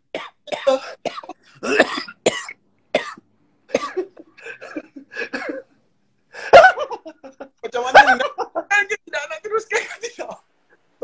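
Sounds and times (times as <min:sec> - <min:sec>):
man coughing: 0:00.2 - 0:05.7.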